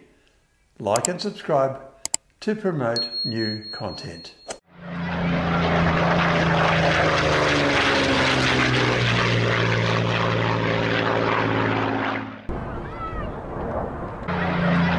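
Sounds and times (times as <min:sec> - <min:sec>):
propeller airplane engine: 0:04.6 - 0:14.9.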